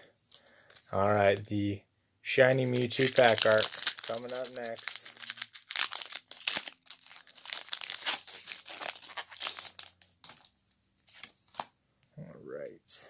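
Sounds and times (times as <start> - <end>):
foil wrapper tearing and crinkling: 2.6 - 10.5.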